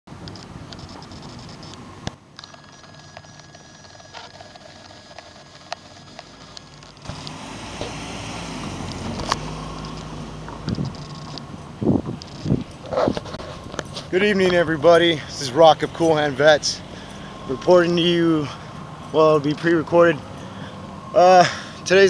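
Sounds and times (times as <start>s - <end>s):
car passing: 6.2s - 22.0s.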